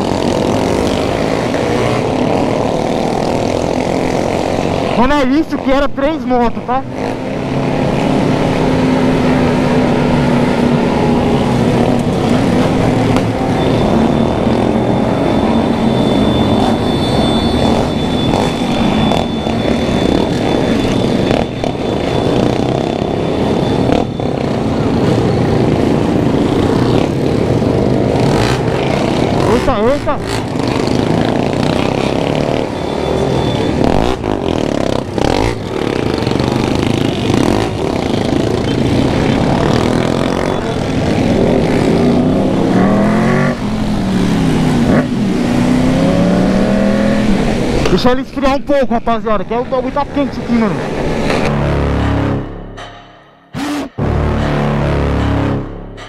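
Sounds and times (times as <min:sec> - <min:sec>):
motorcycle engines revving: 0:00.0 - 0:56.0.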